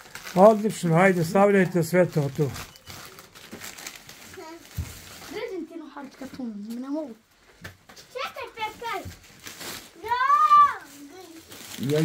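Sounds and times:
plastic bags rustling: 0:00.0 - 0:12.0
young children calling: 0:10.0 - 0:10.9.

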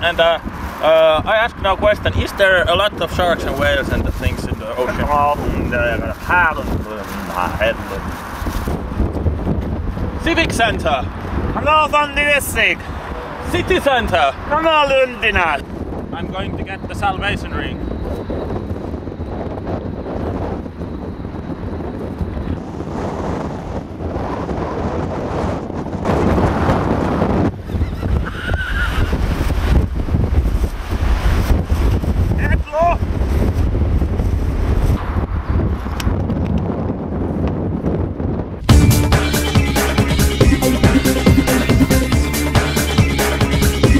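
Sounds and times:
wind buffeting microphone: 0:00.0 - 0:39.1.

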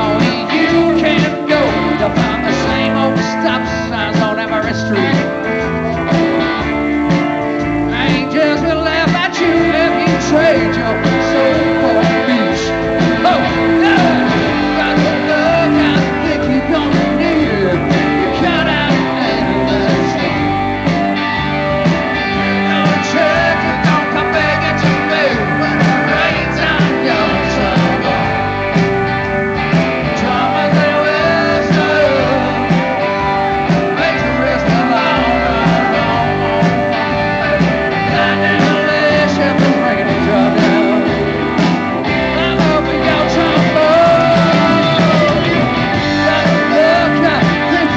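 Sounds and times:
rock band playing live: 0:00.0 - 0:47.9.

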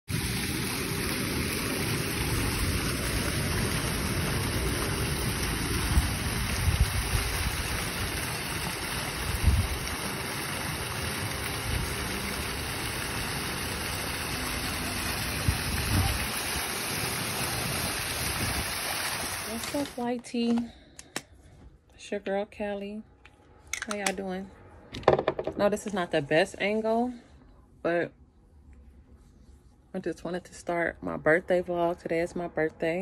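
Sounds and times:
fountain water splashing: 0:00.1 - 0:20.0.

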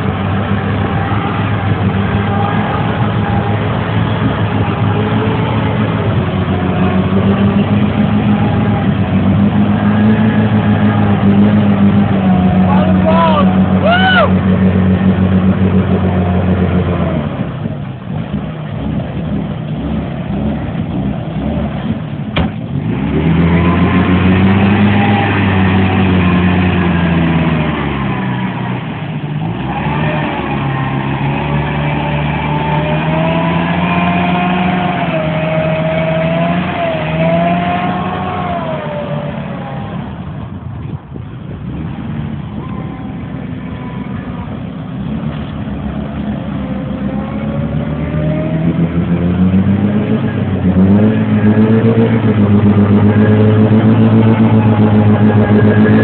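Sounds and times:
car engine revving in mud: 0:00.0 - 0:56.0.

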